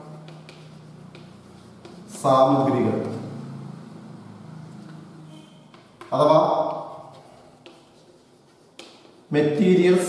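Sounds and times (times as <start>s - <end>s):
chalk tapping on board: 0.0s - 3.3s, 5.6s - 9.3s
chalk writing on blackboard: 0.0s - 3.4s, 4.7s - 10.0s.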